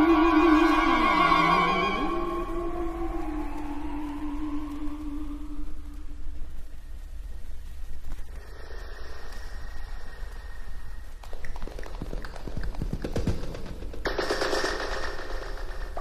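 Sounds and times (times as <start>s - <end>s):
filtered electronic hiss: 0.0s - 16.0s
rapid crackle of clicks: 9.2s - 16.0s.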